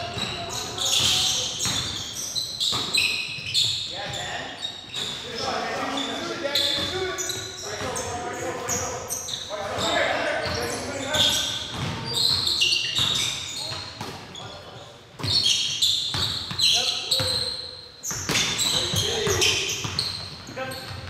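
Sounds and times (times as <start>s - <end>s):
basketball bouncing: 0.0s - 2.0s, 11.6s - 14.2s, 18.1s - 21.0s
sneakers squeaking: 0.0s - 21.0s.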